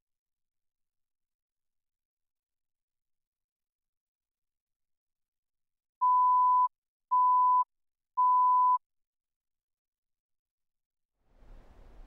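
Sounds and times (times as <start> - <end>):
electronic countdown beeps: 6.0 - 8.8.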